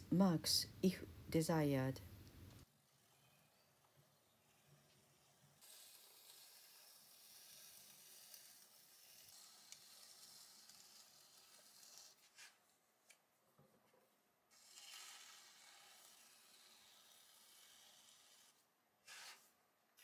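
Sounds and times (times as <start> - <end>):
trimming tool shaving clay: 2.9 - 12.6.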